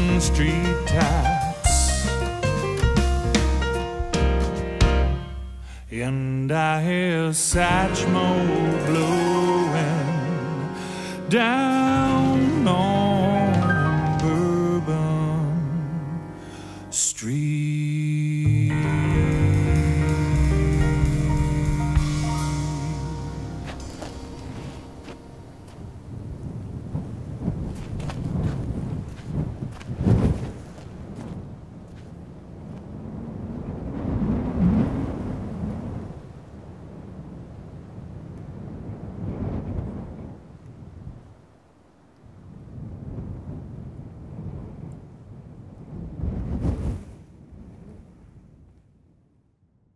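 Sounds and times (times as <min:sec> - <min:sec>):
song's last chord: 0:00.0 - 0:05.8, 0:07.5 - 0:17.0, 0:18.2 - 0:26.2
low rumbling noise: 0:00.0 - 0:48.7.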